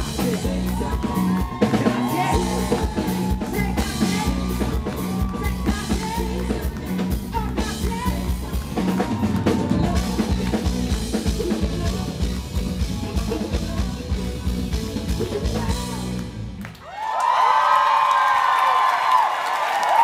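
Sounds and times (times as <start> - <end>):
lead and backing vocals: 0.0 - 16.7
drum kit: 0.0 - 16.8
live band playing: 0.0 - 16.8.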